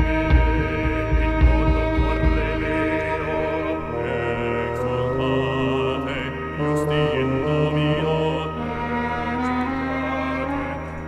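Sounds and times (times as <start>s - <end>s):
wind and string tones: 0.0s - 11.0s.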